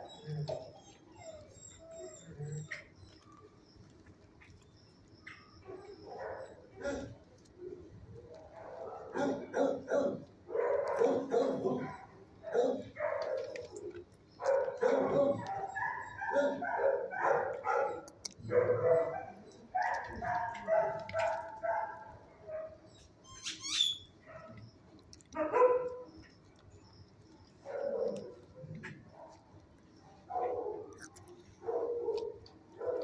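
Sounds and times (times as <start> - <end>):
dogs barking: 5.3 - 23.2, 24.0 - 26.4, 27.4 - 33.0.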